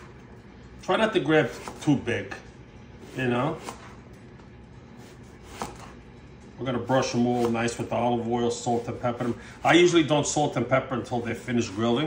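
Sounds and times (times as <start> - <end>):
knife slicing eggplant: 3.0 - 4.0, 5.0 - 6.0, 7.0 - 7.9.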